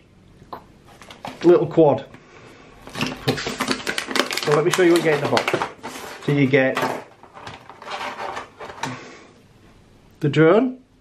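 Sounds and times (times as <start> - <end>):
plastic packaging rustling: 0.9 - 1.7, 2.8 - 9.0.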